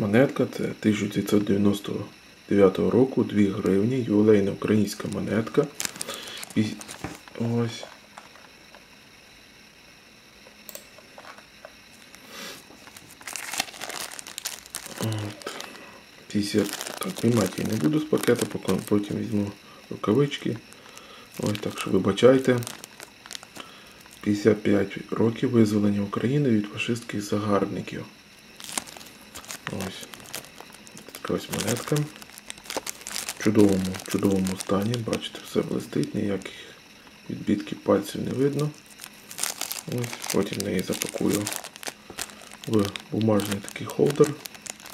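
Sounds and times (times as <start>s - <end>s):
man talking: 0.0s - 5.8s, 6.6s - 7.9s, 14.9s - 15.5s, 16.3s - 20.6s, 21.4s - 22.7s, 29.7s - 30.1s, 31.2s - 32.2s, 33.4s - 36.7s, 37.3s - 38.8s, 39.8s - 41.6s, 42.7s - 44.4s
plastic wrapping crinkling: 4.5s - 8.5s, 11.3s - 24.4s, 28.6s - 36.5s, 38.3s - 44.9s.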